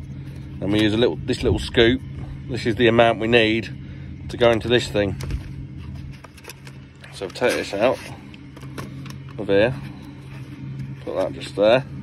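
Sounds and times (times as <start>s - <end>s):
steady low machine hum: 0.0s - 12.0s.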